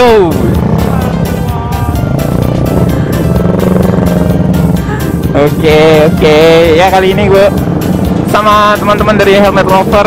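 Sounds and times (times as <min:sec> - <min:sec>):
background music: 0:00.0 - 0:10.0
motorcycle engine running at low revs: 0:00.0 - 0:10.0.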